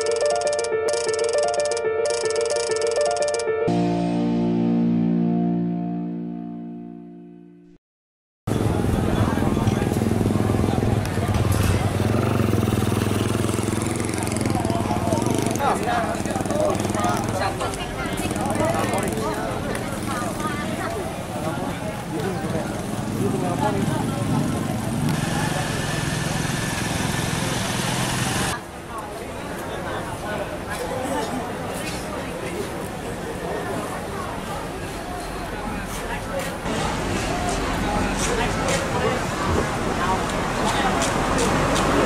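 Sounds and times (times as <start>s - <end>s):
crowd voices: 8.5s - 42.0s
engine running: 22.6s - 28.6s.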